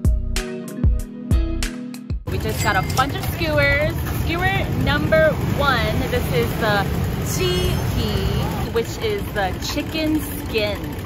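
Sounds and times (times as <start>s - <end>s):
background music: 0.0s - 6.9s
people talking: 2.3s - 11.0s
traffic rumble: 2.3s - 11.0s.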